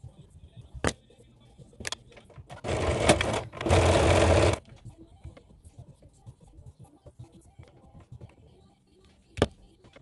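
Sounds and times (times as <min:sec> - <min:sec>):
sewing machine stitching: 0:02.5 - 0:04.6.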